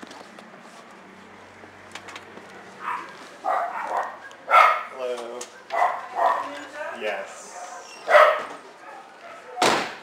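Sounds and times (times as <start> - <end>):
dog barking and yowling: 2.8 - 4.9, 5.6 - 6.5, 7.6 - 9.6.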